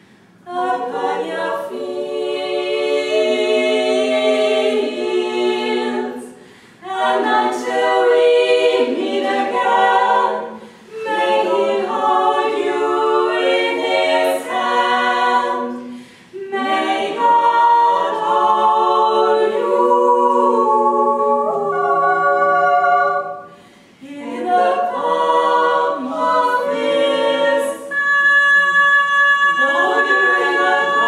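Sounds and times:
women singing in close harmony: 0.4 - 31.0.

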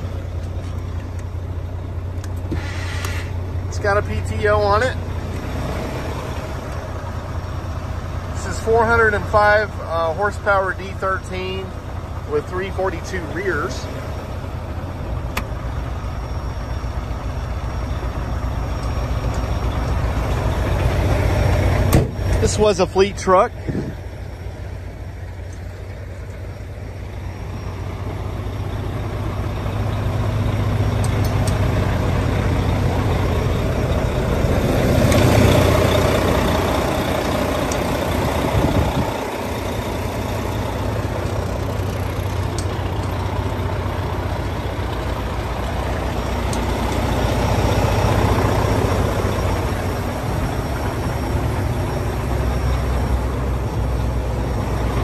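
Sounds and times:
diesel truck engine idling: 0.0 - 55.0.

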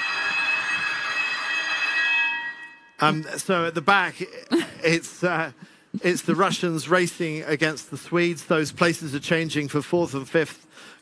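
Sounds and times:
high ringing tones: 0.0 - 3.7.

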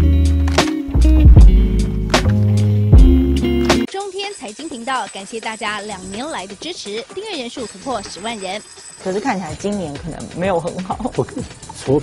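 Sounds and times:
deep bass line: 0.0 - 3.9
steady drum beat: 0.0 - 3.9, 9.5 - 12.0.

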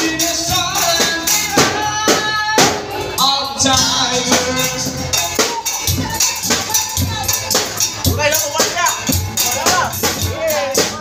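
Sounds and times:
man singing into microphone: 0.0 - 5.6
amplified backing music: 0.0 - 11.0
jingling percussion: 0.0 - 11.0.

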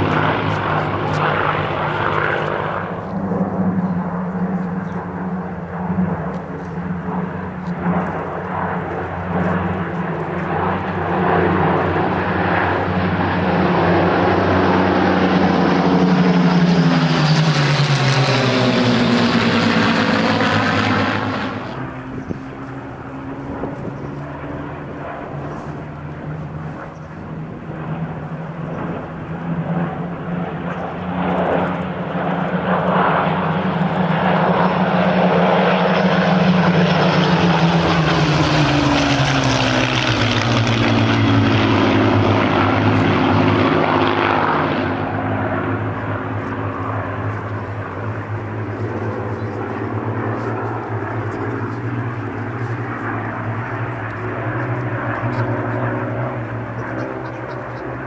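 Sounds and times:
propeller aircraft engines droning: 0.0 - 58.0.

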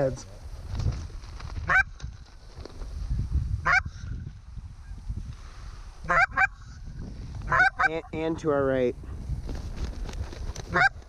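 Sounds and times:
wind rumble on microphone: 0.0 - 11.0
geese honking: 6.0 - 6.7, 7.5 - 8.2, 10.7 - 11.0.

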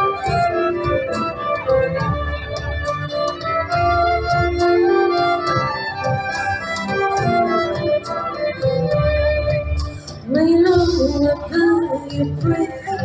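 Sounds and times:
violin lines: 0.0 - 11.0
keyboard chords: 0.0 - 13.0.

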